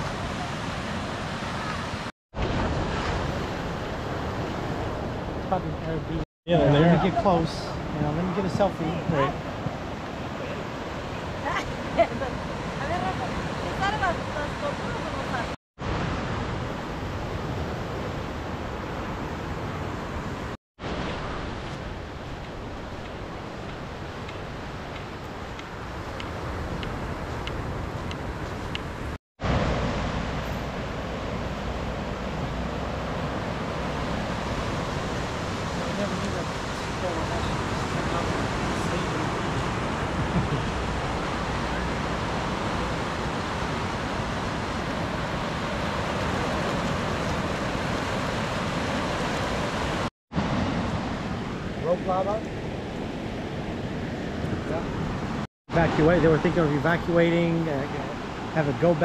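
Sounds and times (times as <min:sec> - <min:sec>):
ocean surf on rocks: 0:00.0 - 0:59.0.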